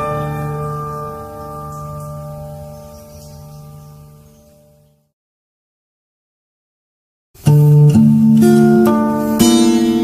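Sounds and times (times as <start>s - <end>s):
acoustic guitar chord ringing: 0.0s - 4.9s, 7.4s - 10.0s.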